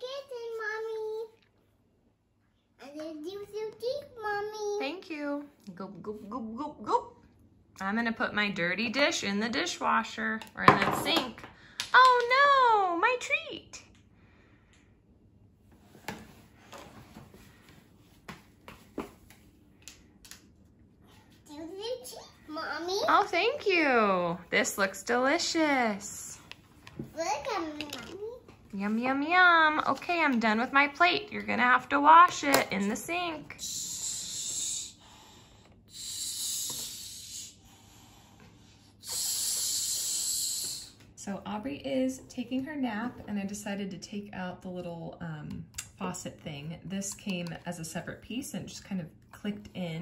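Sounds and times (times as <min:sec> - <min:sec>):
child making a shushing hiss: 0:33.6 - 0:35.0, 0:35.9 - 0:37.9, 0:39.0 - 0:41.0.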